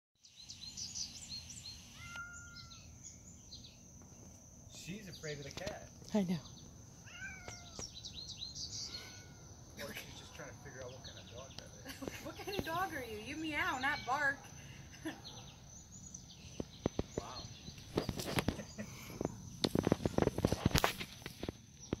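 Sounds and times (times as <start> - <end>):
birds chirping: 0.2 - 22.0.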